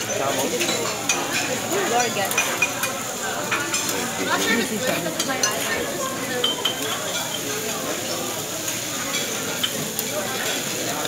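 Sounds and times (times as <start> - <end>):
rice sizzling on a griddle: 0.0 - 11.0.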